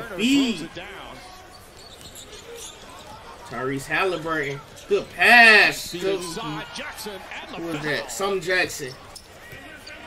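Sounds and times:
commentator talking: 0:00.0 - 0:01.6, 0:03.0 - 0:10.0
crowd murmur: 0:00.0 - 0:05.2.

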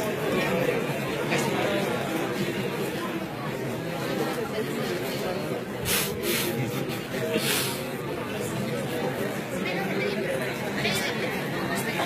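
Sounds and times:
audience chatter: 0:00.0 - 0:12.0
short hissing noises: 0:05.8 - 0:06.6.

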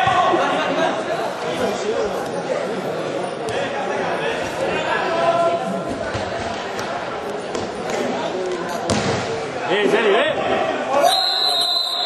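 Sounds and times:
spectators chattering: 0:00.0 - 0:12.0.

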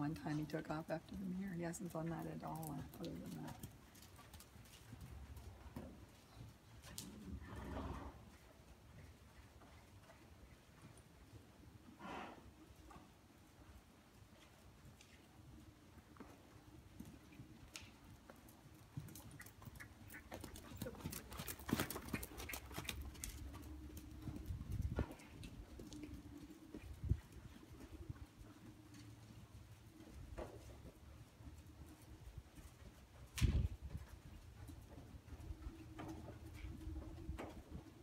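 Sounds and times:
sharp hoof clicks: 0:00.5 - 0:11.1, 0:16.1 - 0:38.0.

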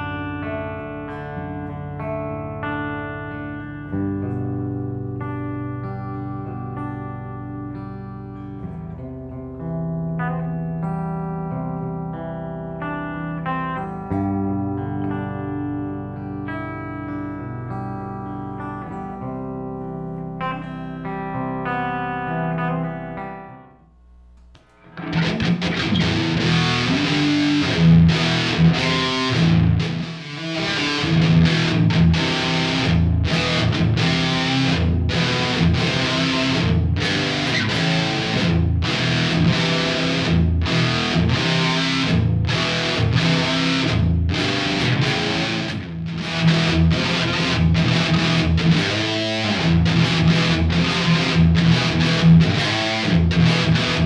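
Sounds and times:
distorted electric guitar riffing: 0:00.0 - 0:23.8, 0:24.5 - 0:54.0
clean electric guitar chords: 0:00.0 - 0:54.0.

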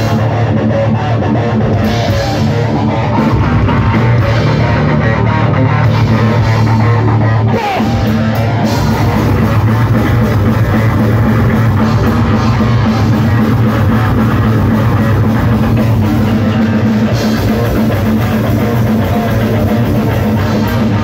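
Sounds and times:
thrash metal band playing live: 0:00.0 - 0:21.0.

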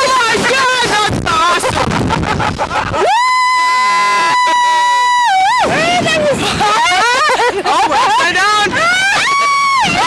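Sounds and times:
rushing air: 0:00.3 - 0:10.0
woman screaming: 0:03.0 - 0:07.2, 0:08.7 - 0:10.0.

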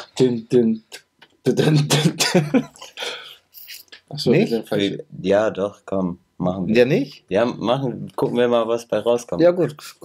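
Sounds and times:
man coughing or clearing throat: 0:01.5 - 0:03.3.

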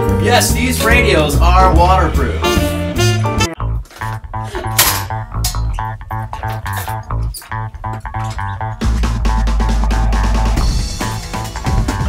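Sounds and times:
guitar bass and drums music: 0:00.0 - 0:12.0
held low bass note: 0:00.5 - 0:03.8.

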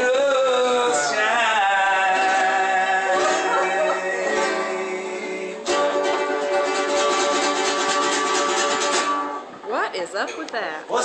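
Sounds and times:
acoustic guitars strumming chords: 0:00.0 - 0:11.0.

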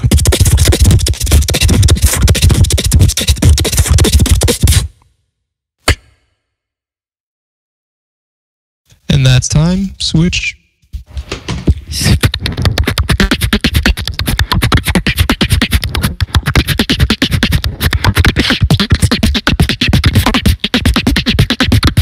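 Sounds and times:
beatboxing into microphone: 0:00.0 - 0:04.9, 0:11.7 - 0:22.0.

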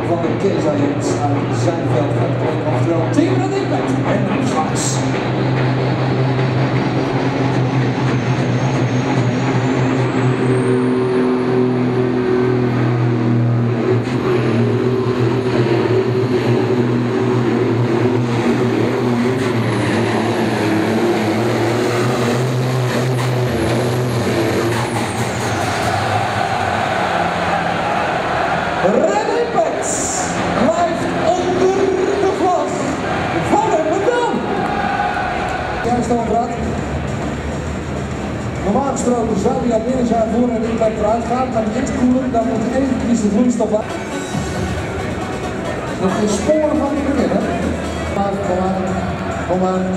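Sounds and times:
man talking: 0:00.0 - 0:05.2, 0:28.8 - 0:34.5, 0:35.8 - 0:36.8, 0:38.6 - 0:43.9, 0:46.0 - 0:49.9
tractor engine running flat out: 0:00.0 - 0:34.6
high turbo whine: 0:00.0 - 0:49.9.

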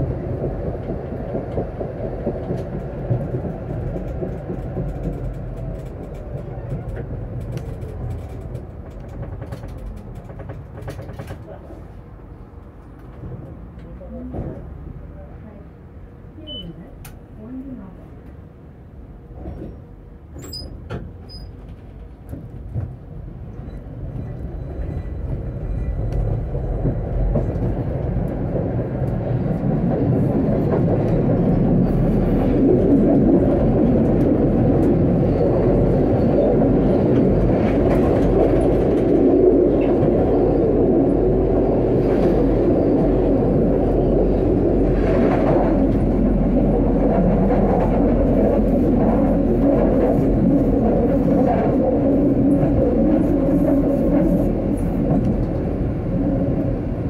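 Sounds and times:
tram running on rails: 0:00.0 - 0:57.0.

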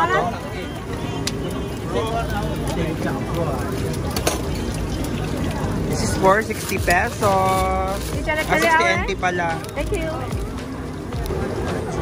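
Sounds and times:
busy market background noise: 0:00.0 - 0:12.0
faint voices: 0:00.0 - 0:12.0.

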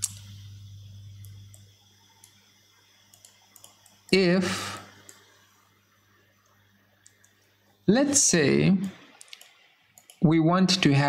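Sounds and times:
low hum: 0:00.0 - 0:09.0
computer mouse clicks: 0:03.0 - 0:04.2, 0:04.9 - 0:05.3, 0:06.4 - 0:07.5, 0:08.8 - 0:10.2.

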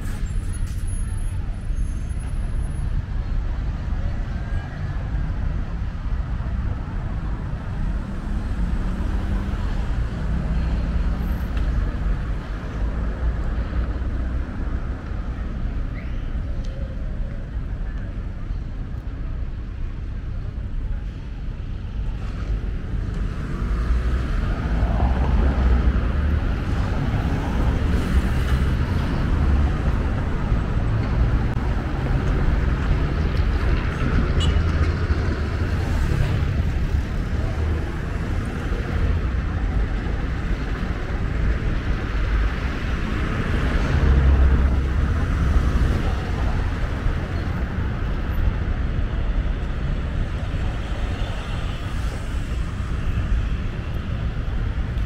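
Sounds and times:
low traffic rumble: 0:00.0 - 0:55.0
cars passing: 0:02.4 - 0:17.8, 0:19.8 - 0:55.0.

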